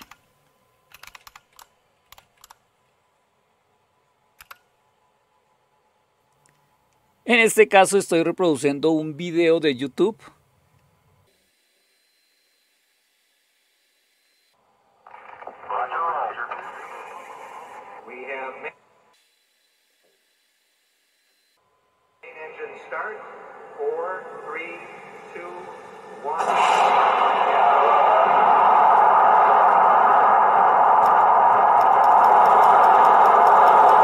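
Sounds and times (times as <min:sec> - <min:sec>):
film soundtrack through small speakers: 0:00.0 - 0:11.3, 0:14.6 - 0:19.2, 0:21.6 - 0:34.0.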